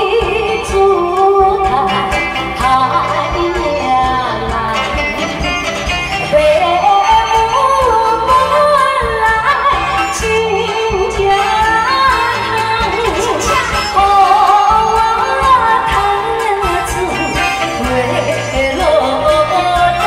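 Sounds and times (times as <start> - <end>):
backing music: 0.0 - 20.0
woman singing into a microphone: 0.0 - 20.0.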